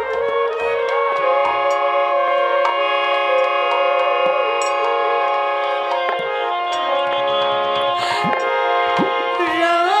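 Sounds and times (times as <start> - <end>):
sharp ticks: 0.0 - 9.2
bamboo flute melody: 0.0 - 10.0
harmonium sustained chord: 0.2 - 10.0.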